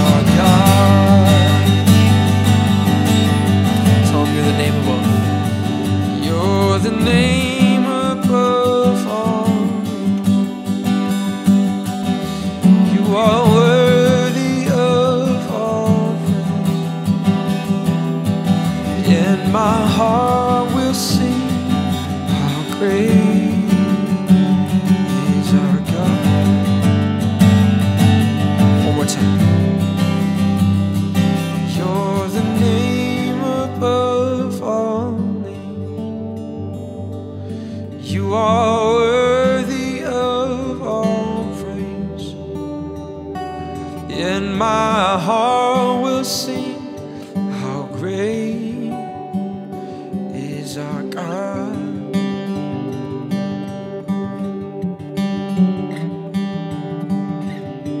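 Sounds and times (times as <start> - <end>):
man singing: 0.0 - 10.6, 12.1 - 17.2, 18.7 - 27.0, 28.6 - 29.9, 31.5 - 36.0, 37.5 - 42.6, 43.9 - 53.0
acoustic guitar strumming chords: 0.0 - 58.0.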